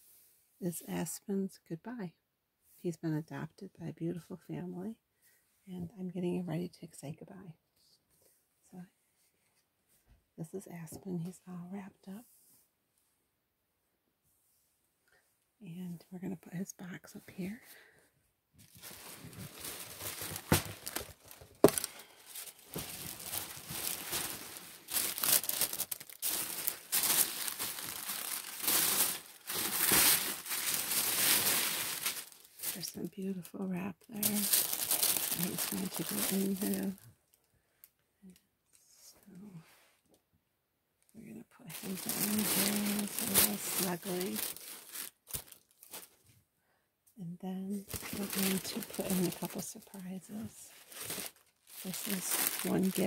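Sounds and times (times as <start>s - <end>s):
tissue paper crinkling: 18.6s - 33.0s, 34.1s - 37.0s, 41.7s - 46.2s, 47.7s - 53.0s.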